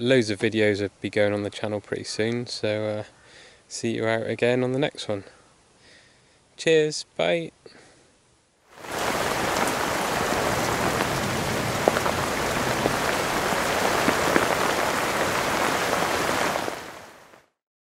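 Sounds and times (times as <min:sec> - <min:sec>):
rain-like hiss: 0:00.0 - 0:17.5.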